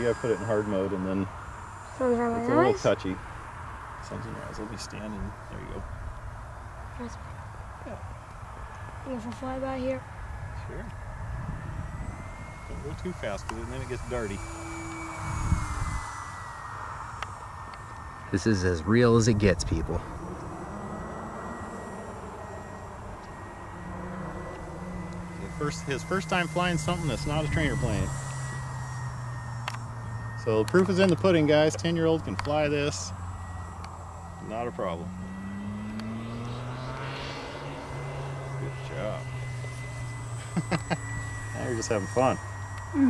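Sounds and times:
model aircraft motor whining: 0.0s - 43.0s
low rumble: 9.7s - 43.0s.

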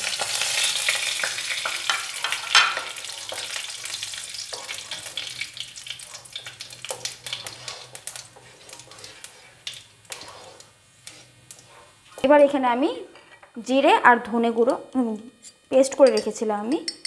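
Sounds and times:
spices sizzling in hot oil: 0.0s - 13.8s
spatula stirring: 0.6s - 12.5s.

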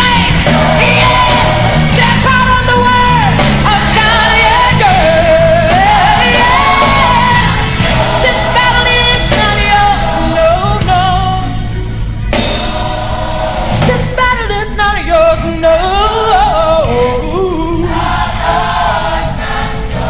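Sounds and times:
woman singing gospel: 0.0s - 11.7s, 13.8s - 18.0s
bass and band accompaniment: 0.0s - 20.0s.

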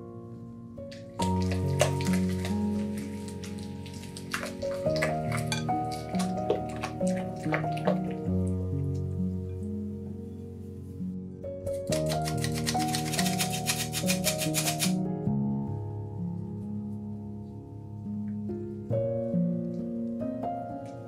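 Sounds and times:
instrumental background music: 0.0s - 21.0s
spatula stirring thick batter: 1.0s - 8.2s.

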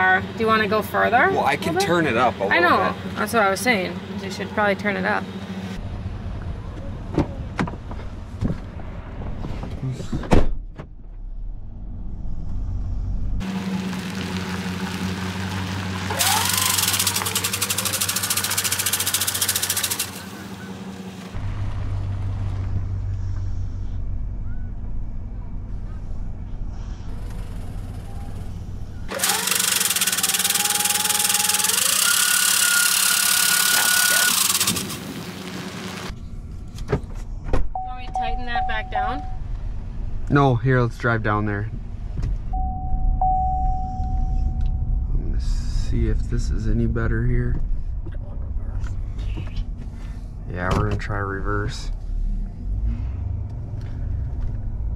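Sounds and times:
truck engine running: 0.0s - 10.1s, 10.8s - 54.9s
car door shutting: 7.1s - 11.2s.

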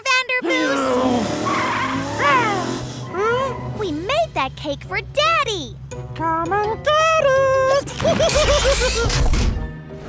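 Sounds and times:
rising squeaky cry: 0.8s - 3.8s
cartoon car engine running: 1.0s - 9.2s.

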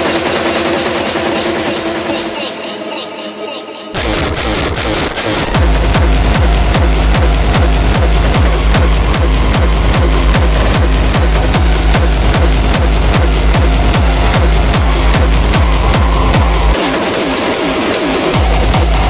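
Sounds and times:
dense synth layer: 0.0s - 19.0s
distorted kick drum beat: 4.0s - 19.0s.

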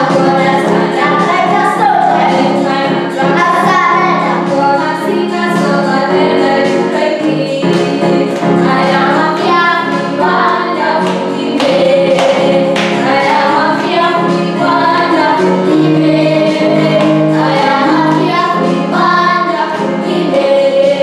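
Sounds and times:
girl singing: 0.0s - 21.0s.

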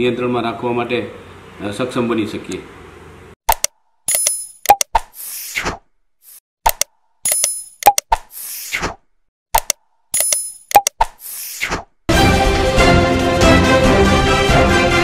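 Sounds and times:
mouse clicks: 9.6s - 11.2s.

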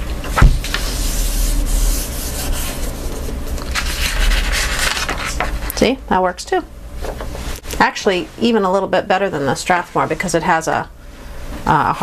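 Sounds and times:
hand rubbing over paper: 0.6s - 5.5s.

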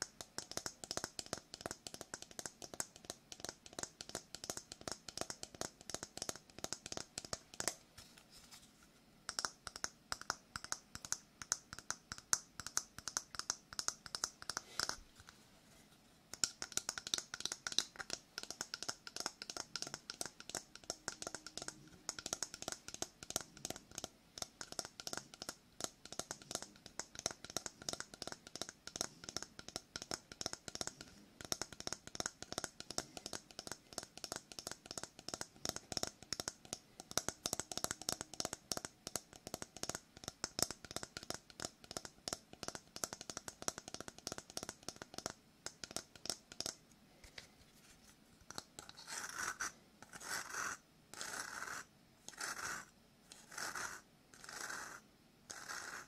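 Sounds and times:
fingernails tapping on shell: 16.3s - 46.8s.

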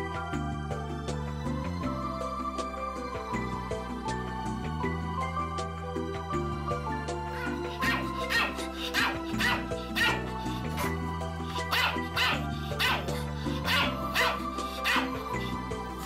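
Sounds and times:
background music with held chords: 0.0s - 16.0s
small dog barking: 7.8s - 10.2s, 11.6s - 15.2s.

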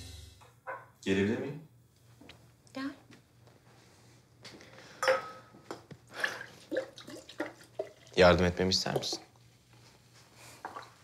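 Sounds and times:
glass clinking: 5.0s - 5.5s
liquid pouring into glasses: 6.1s - 9.4s.

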